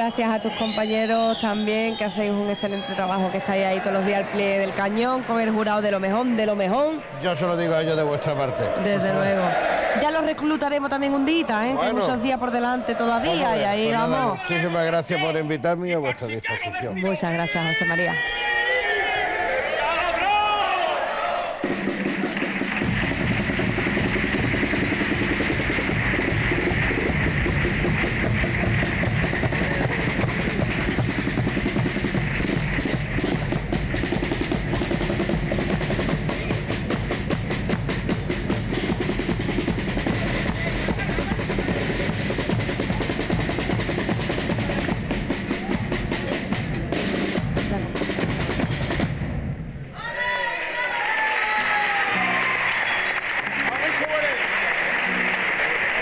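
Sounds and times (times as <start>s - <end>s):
bass drum and snare drums: 21.6s - 49.8s.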